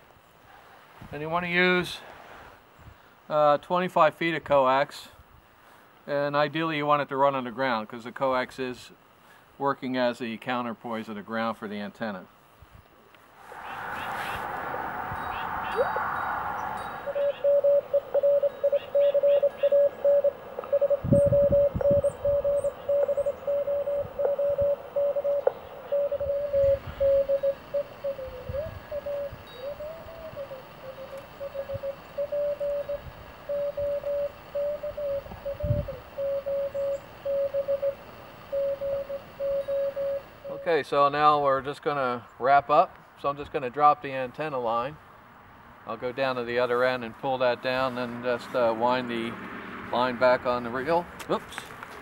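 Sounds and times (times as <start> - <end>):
morse code tone: 17.0 - 27.6, 36.2 - 40.8.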